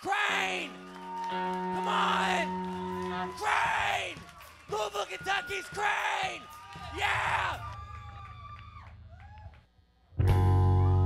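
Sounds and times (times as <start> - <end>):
audience whoops and howls: 0.3 - 9.6
low amplifier hum: 7.1 - 11.0.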